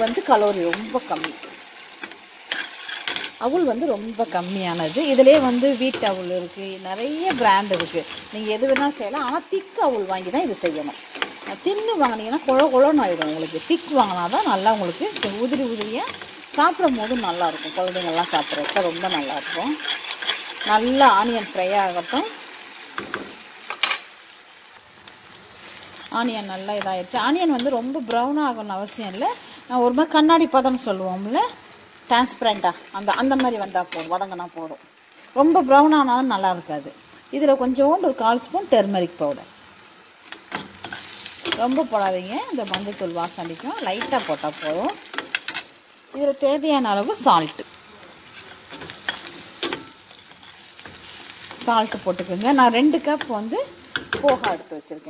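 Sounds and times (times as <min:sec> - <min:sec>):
onions sizzling in oil: 0:00.0 - 0:55.0
metal spoon scraping steel pan: 0:00.7 - 0:03.4, 0:15.1 - 0:22.3
spatula ticking: 0:05.1 - 0:22.2.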